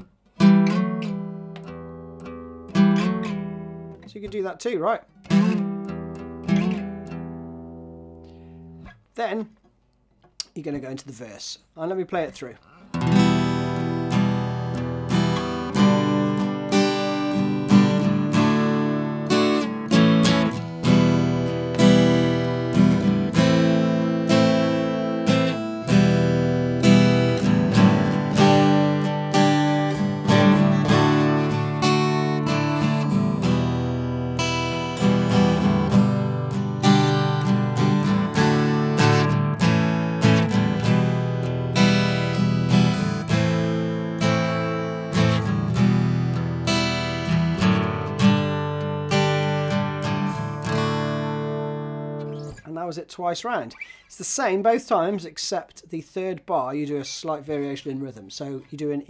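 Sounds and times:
acoustic guitar strumming chords: 0.0s - 9.6s, 12.7s - 54.0s.

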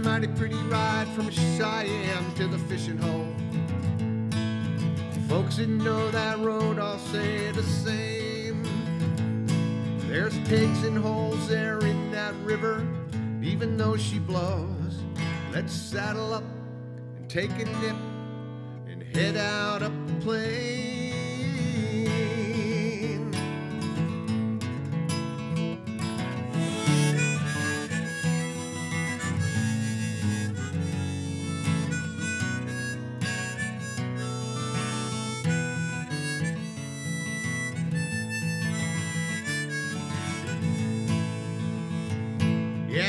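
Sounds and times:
harmonica: 0.0s - 14.6s, 19.1s - 24.7s, 25.9s - 43.0s
strummed acoustic guitar: 0.0s - 43.0s.

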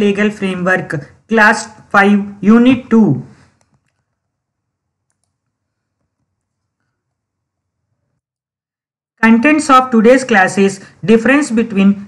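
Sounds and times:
soft clicks: 5.0s - 6.7s.

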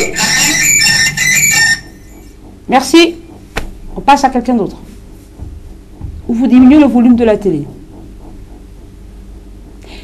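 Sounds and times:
garbled telephone line noise: 0.0s - 4.5s.

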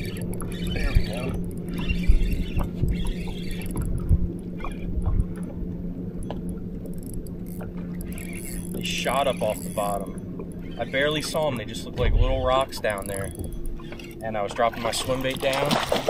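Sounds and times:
steady low hum: 0.0s - 16.0s
wind and water rumble: 0.0s - 16.0s.

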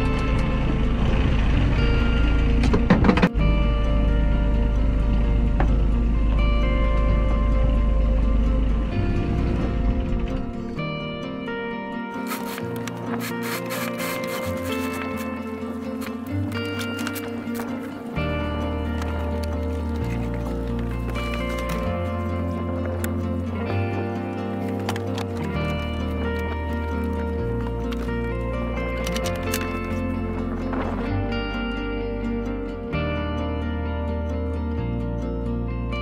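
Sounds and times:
bass line: 0.0s - 36.0s
plucked melody: 0.0s - 36.0s.

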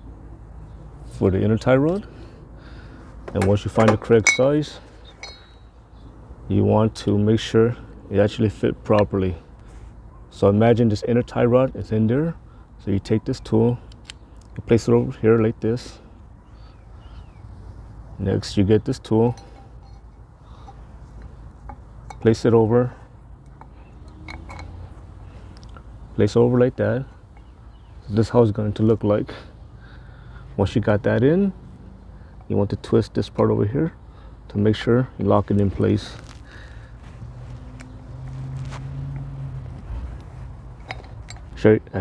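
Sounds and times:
low background hum: 0.0s - 42.0s.

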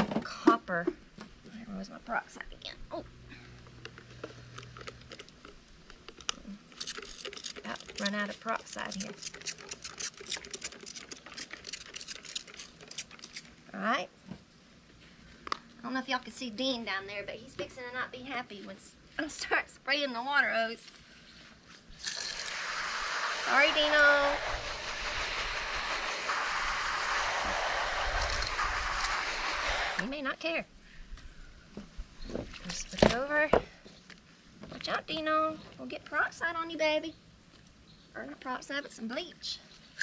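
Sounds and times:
spray bottle squirting: 3.9s - 13.6s, 22.0s - 30.0s
hose spraying water: 22.0s - 30.1s.

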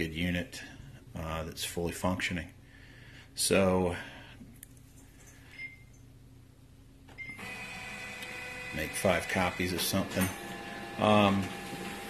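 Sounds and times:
printer machinery whirring: 7.3s - 12.0s.

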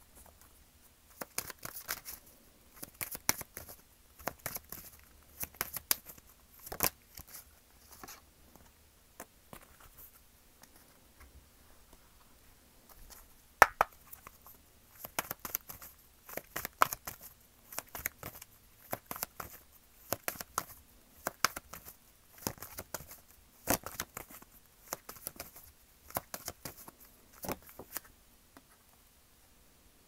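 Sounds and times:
cards being shuffled: 1.1s - 2.2s, 2.8s - 8.2s, 12.9s - 28.1s.

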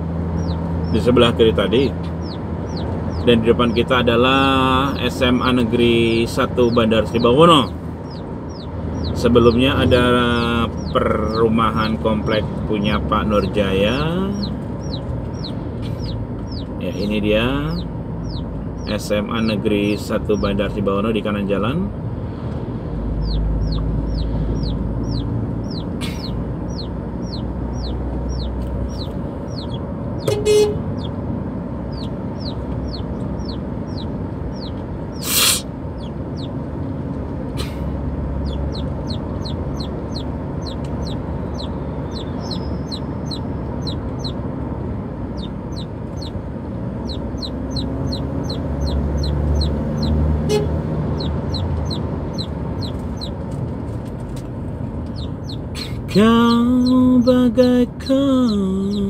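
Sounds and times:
car rumble from inside cabin: 0.0s - 59.0s
chicks peeping: 0.3s - 21.7s, 23.1s - 31.2s, 31.8s - 36.6s, 38.4s - 44.5s, 45.2s - 59.0s
vehicle horn toot: 30.2s - 31.0s, 50.4s - 50.9s.

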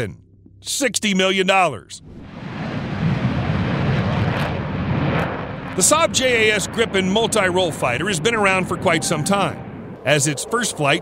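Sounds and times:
jet engines rumbling: 2.0s - 11.0s.

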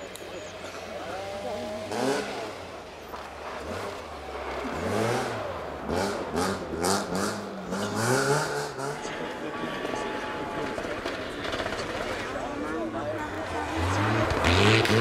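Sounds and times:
car engine revving: 0.6s - 15.0s.

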